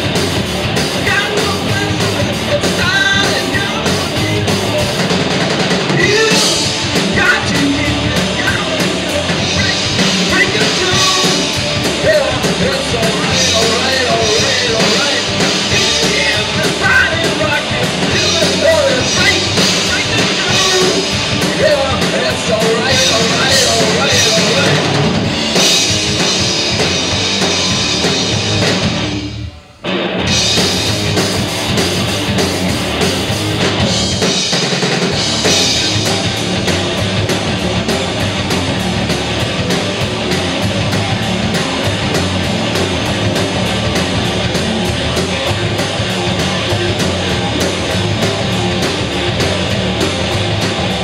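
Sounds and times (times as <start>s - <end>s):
rock band playing loudly: 0.0s - 51.0s.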